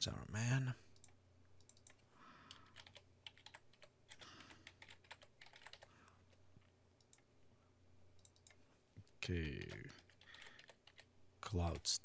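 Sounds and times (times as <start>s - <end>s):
keyboard typing clicks: 1.0s - 5.9s, 8.2s - 8.6s, 9.5s - 11.9s.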